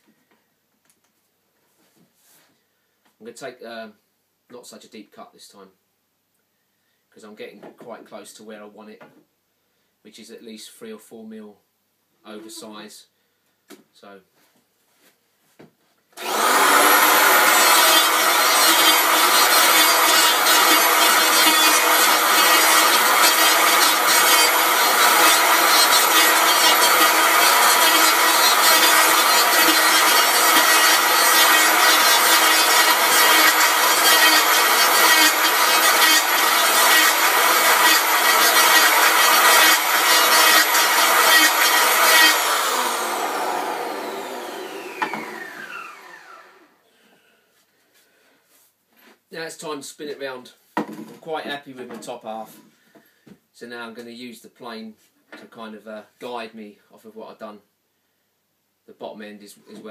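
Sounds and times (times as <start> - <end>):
electric hand planer cutting wood: 16.2 - 46.7.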